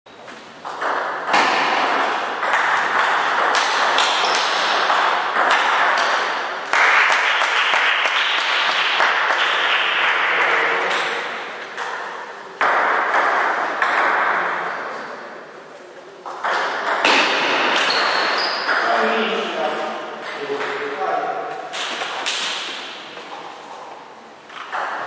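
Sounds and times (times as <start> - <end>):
steady background noise: 0.1 - 25.0
table tennis ball hits: 0.6 - 14.6, 16.3 - 20.9, 21.5 - 23.8, 24.6 - 25.0.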